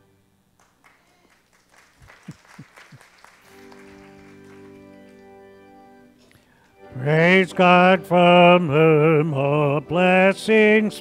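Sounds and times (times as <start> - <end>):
sustained keyboard chords: 3.4 - 11.0.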